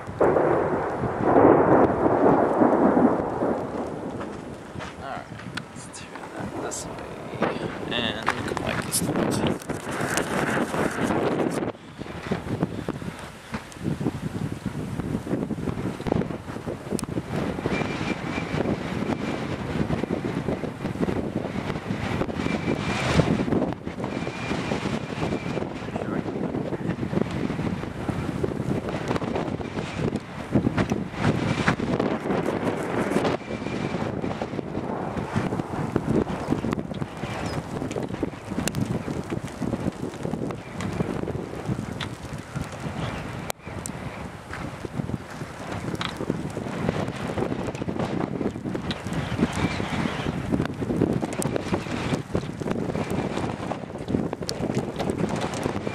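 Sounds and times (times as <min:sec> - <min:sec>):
gusty wind buffeting microphone: 0:00.0 - 0:55.9.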